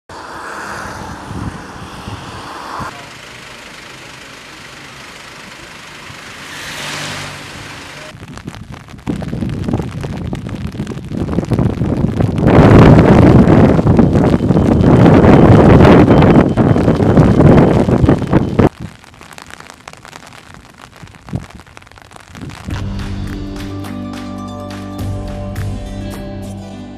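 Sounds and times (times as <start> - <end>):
loud rough rushing noise: 0.1 - 8.2, 12.2 - 18.7, 22.5 - 24.0
steady outdoor rush: 0.1 - 18.8, 22.3 - 26.6.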